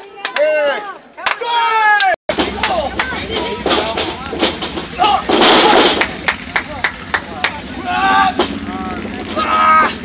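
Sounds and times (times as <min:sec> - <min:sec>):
wrestlers crashing onto ring mat: 0:03.3 - 0:06.2.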